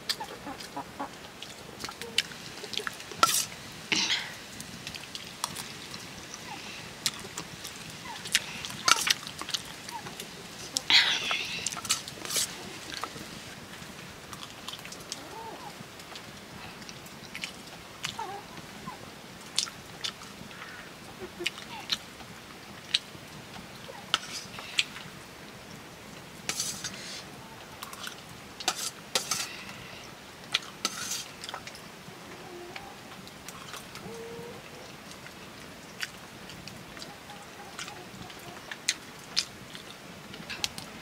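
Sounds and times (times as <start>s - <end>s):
chewing: 32.7s - 35.4s.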